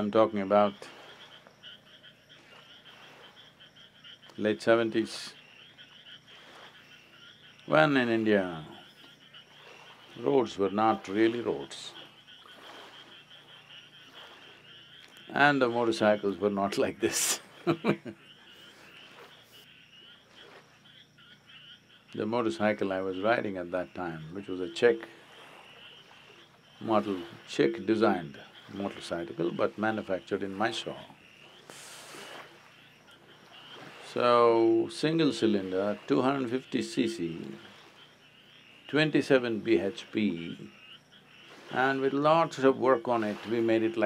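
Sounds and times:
faint background hiss: 0:00.0 - 0:20.0
frogs trilling: 0:00.0 - 0:44.0.

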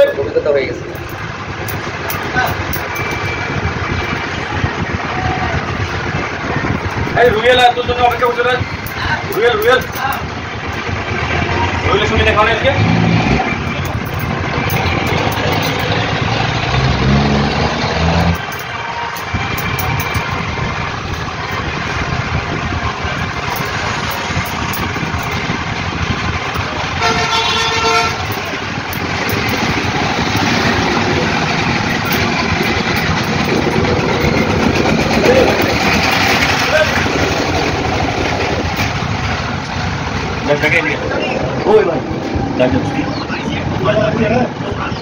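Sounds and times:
low engine sound: 0:00.0 - 0:44.6
vehicle engines running: 0:00.0 - 0:45.0
vehicle horn: 0:26.9 - 0:28.6.

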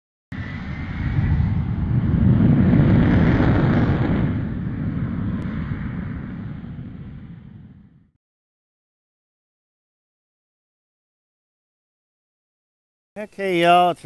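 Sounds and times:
jet aircraft engine noise: 0:00.3 - 0:08.1.

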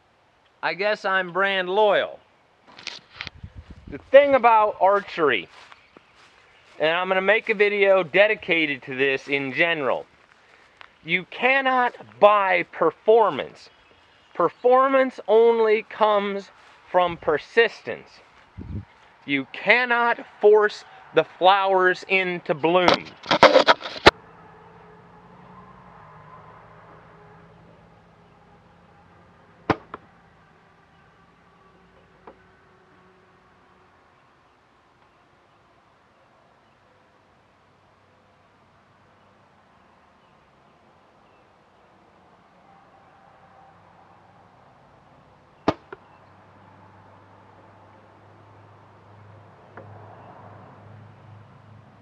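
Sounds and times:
arrow hitting target: 0:22.9 - 0:24.1, 0:29.7 - 0:30.0
camera handling knocks and rustles: 0:22.9 - 0:24.1.

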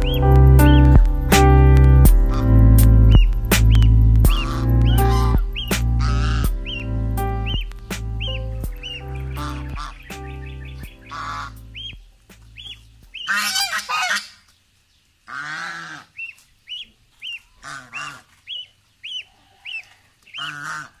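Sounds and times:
gosling peeping: 0:00.0 - 0:01.5, 0:02.1 - 0:14.6, 0:15.3 - 0:21.0
geese honking: 0:02.2 - 0:14.5, 0:15.2 - 0:21.0.

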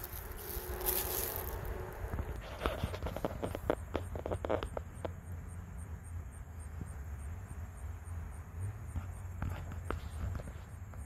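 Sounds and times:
low rumble: 0:00.0 - 0:04.3
footsteps on wood chips: 0:00.0 - 0:04.4
cricket chirping: 0:00.0 - 0:11.0.

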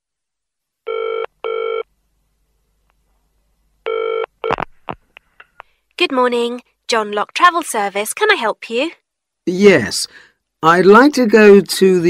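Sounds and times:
telephone ringing: 0:00.9 - 0:01.9, 0:03.9 - 0:04.3.

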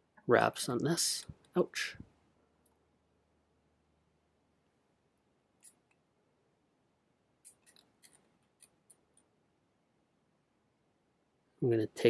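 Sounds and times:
faint small clicks: 0:07.4 - 0:09.3.

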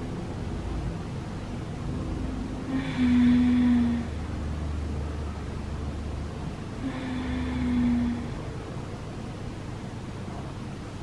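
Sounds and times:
low background hum: 0:00.0 - 0:11.0
woman moaning: 0:02.7 - 0:04.2, 0:06.8 - 0:08.5.

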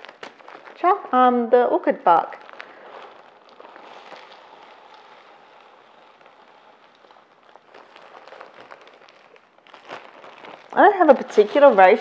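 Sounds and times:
bark chips pouring into basin: 0:02.3 - 0:12.0.

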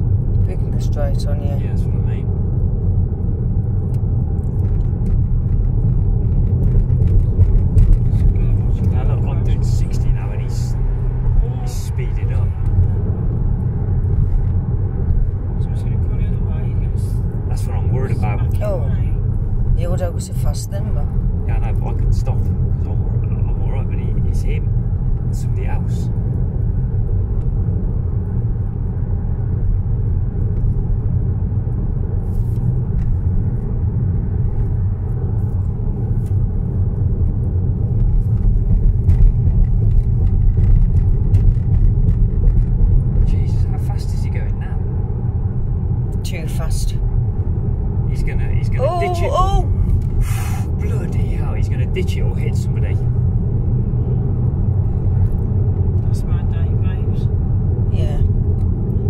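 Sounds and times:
car road noise rumble: 0:00.0 - 0:59.0.

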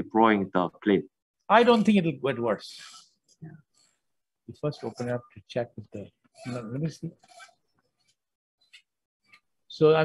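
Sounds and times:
man speaking: 0:04.5 - 0:07.2.

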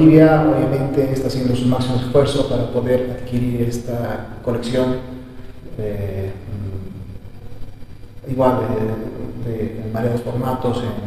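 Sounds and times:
man speaking: 0:00.0 - 0:07.1, 0:08.2 - 0:11.0
low room hum: 0:00.0 - 0:11.0.

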